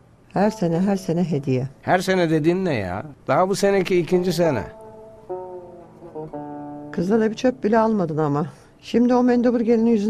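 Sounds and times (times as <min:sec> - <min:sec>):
plucked string instrument chords: 0:03.6 - 0:08.3.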